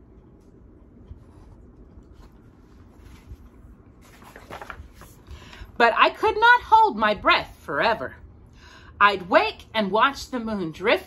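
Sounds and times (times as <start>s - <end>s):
low room rumble: 0.0s - 11.0s
book rustling: 1.0s - 5.6s.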